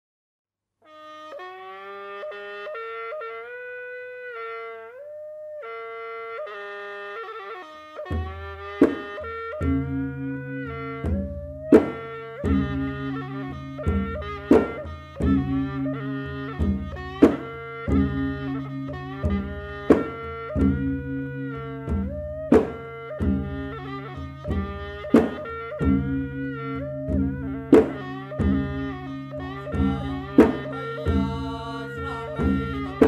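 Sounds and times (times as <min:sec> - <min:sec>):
wind instrument sliding melody: 0:00.9 - 0:33.0
hand drums: 0:08.1 - 0:33.0.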